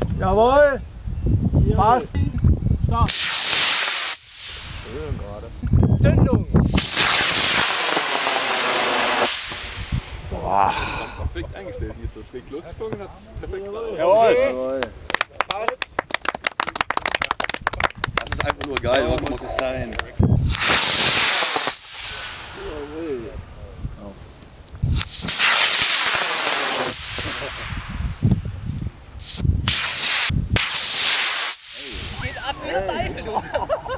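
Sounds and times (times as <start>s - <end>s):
rocket motor hissing: 3.1s - 5.1s, 6.6s - 10.2s, 20.4s - 23.0s, 24.8s - 28.2s, 29.2s - 32.5s.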